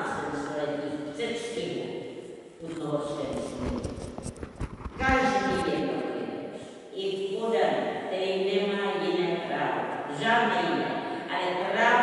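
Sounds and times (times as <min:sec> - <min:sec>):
woman speaking: 0:00.0 - 0:01.9, 0:02.6 - 0:03.9, 0:05.0 - 0:12.0.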